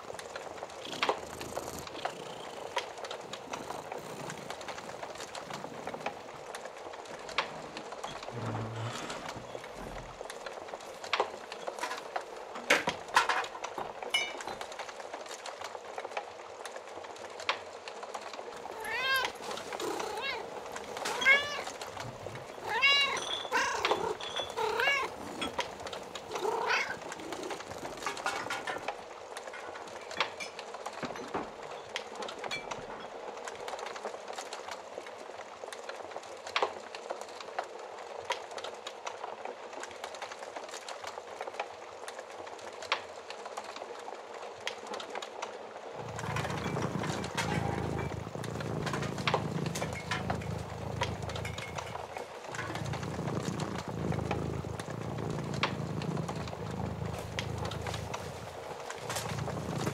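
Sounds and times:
wood fire crackling: 0.0s - 59.9s
cat meowing: 18.6s - 25.2s, 26.2s - 27.6s
low steady rumble: 46.0s - 59.9s.

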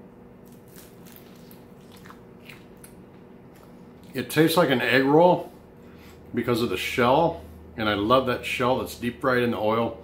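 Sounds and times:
man chewing crispy food: 0.4s - 4.2s.

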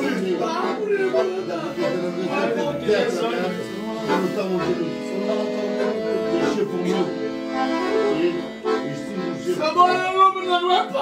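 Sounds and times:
person speaking: 0.0s - 11.0s
piano accordion playing a tune: 0.0s - 11.0s.

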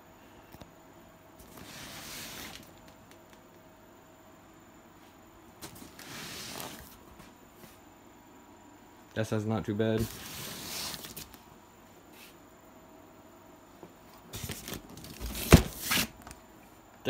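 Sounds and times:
low room hiss: 0.0s - 17.0s.

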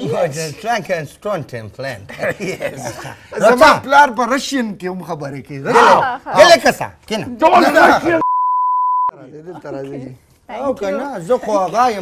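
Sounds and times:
censor bleep: 8.2s - 9.1s.

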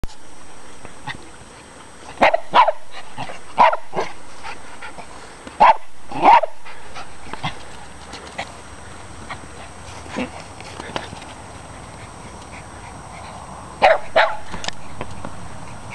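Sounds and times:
dogs barking: 2.2s - 4.2s, 5.6s - 7.8s, 11.9s - 15.9s.

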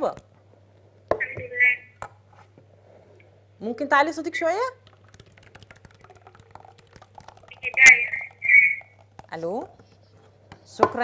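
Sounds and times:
caller's voice over telephone line: 1.2s - 1.9s, 7.5s - 8.8s.

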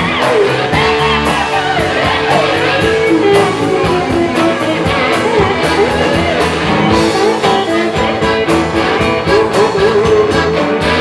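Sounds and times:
bass: 0.0s - 11.0s
drums: 0.0s - 11.0s
lead guitar bending notes: 0.0s - 11.0s.

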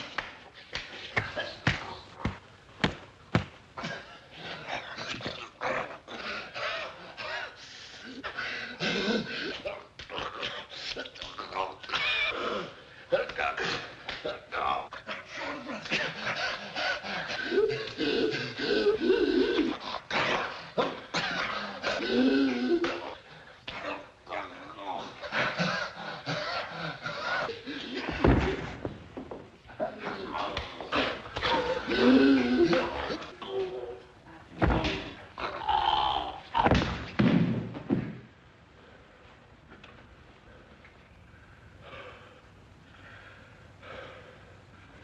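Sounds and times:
men groaning and grunting: 1.1s - 36.9s
strained grunting: 29.7s - 36.7s.

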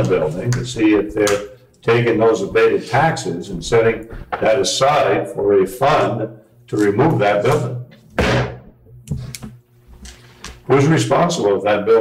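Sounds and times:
sudden thump: 8.2s - 8.8s.

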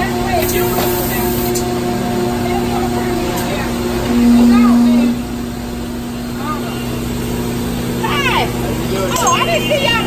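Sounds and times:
hydraulic press machine hum: 0.0s - 9.1s.

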